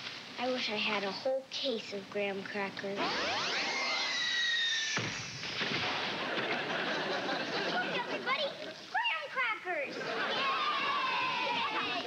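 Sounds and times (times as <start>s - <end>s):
sudden hit: 4.9s - 6.2s
voices: 6.2s - 12.0s.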